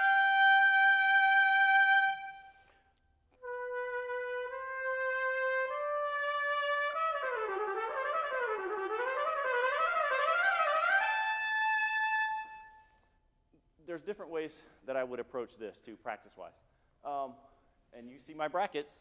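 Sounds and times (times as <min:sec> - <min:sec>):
solo trumpet playing: 0:00.0 - 0:02.8, 0:03.4 - 0:13.0.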